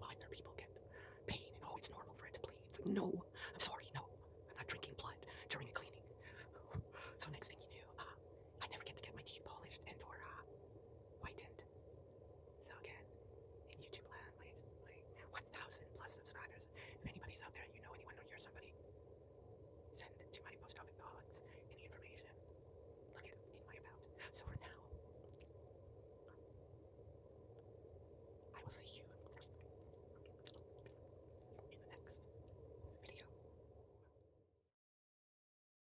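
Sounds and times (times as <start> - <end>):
faint whispering: 0.0 - 10.5, 11.2 - 11.7, 12.6 - 18.8, 19.9 - 22.4, 23.1 - 25.5, 28.5 - 29.7, 30.4 - 33.4
wet tongue clicks: 25.3 - 25.5, 29.2 - 31.7
lip smacks: 29.2 - 31.7.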